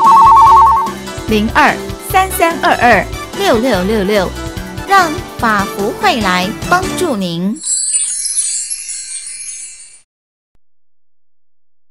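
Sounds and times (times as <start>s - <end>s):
high glittering chime shimmer: 7.6s - 10.1s.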